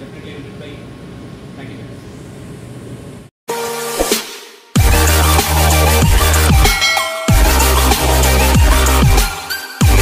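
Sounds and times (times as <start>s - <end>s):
machinery and ventilation hum: 0.0s - 3.3s
loud electronic music: 3.6s - 10.0s.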